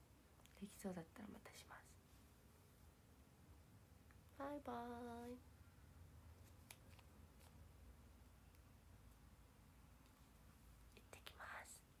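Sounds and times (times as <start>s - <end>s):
young woman whispering: 0.5s - 2.0s, 10.9s - 12.0s.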